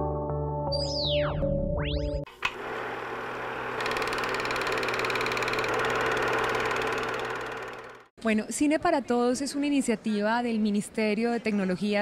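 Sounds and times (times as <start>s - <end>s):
film projector whirring and clattering: 2.3s - 8.1s.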